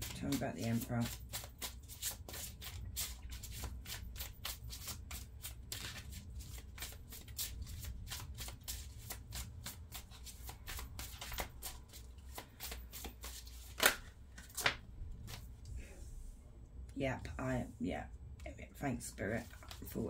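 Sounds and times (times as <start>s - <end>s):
cards being shuffled: 0.0s - 15.5s
card slaps: 10.7s - 15.4s.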